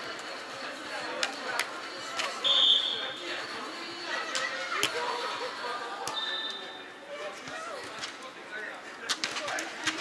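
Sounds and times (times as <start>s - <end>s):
players' voices in indoor hall: 0.0s - 10.0s.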